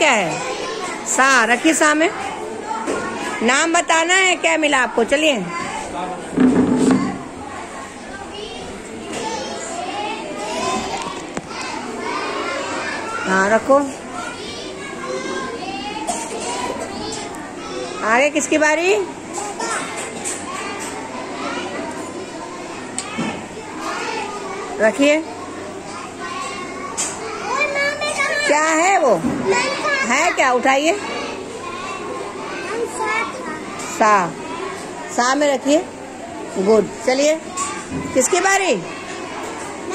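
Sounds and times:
young children chattering: 0.0s - 39.9s.

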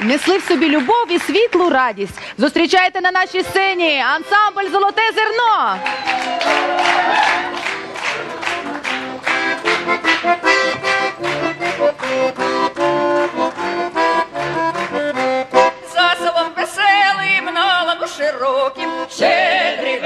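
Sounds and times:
accordion playing folk tune: 0.0s - 20.0s.

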